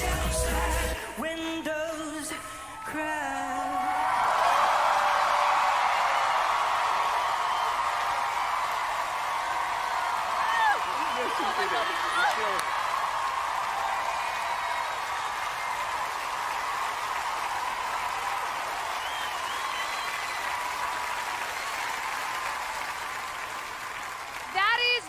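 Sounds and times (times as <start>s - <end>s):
audience applauding and cheering: 2.8s - 25.0s
woman talking: 24.5s - 25.0s.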